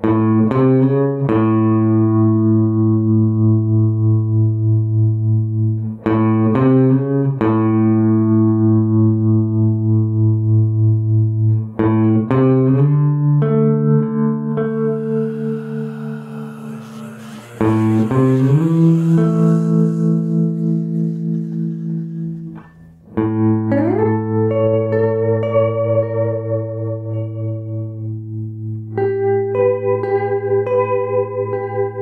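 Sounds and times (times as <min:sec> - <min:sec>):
electric bass guitar notes: 0:00.0 - 0:31.2
hiss: 0:14.9 - 0:22.7.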